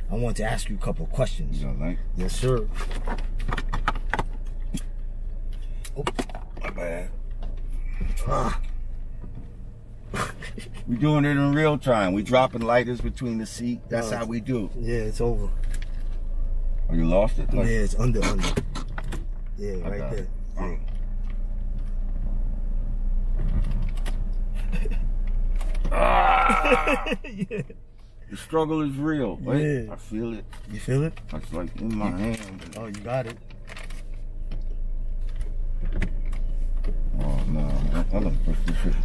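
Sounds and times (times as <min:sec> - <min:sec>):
car engine idling: 0:00.0 - 0:39.0.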